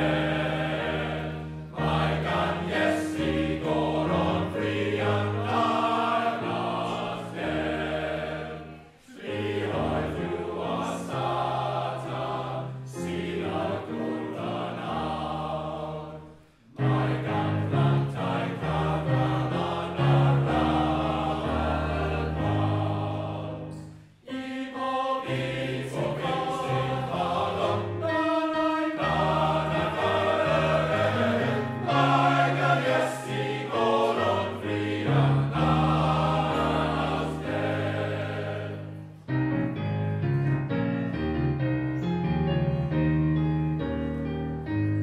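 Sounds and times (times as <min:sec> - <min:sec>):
male voice choir singing: 0:00.0 - 0:39.0.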